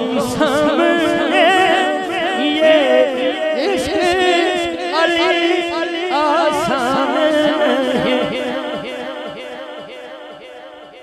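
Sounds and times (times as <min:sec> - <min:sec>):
man singing amplified: 0:00.0 - 0:11.0.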